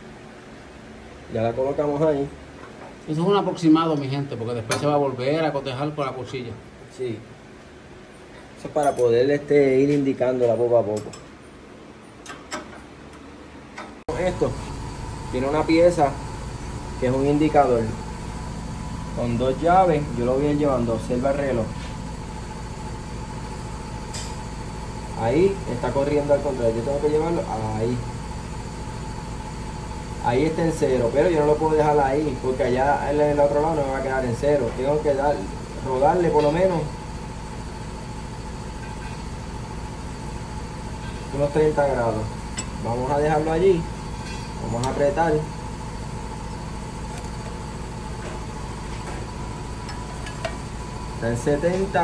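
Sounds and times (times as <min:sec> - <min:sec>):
machinery hum with faint whine: 0:00.0 - 0:52.0.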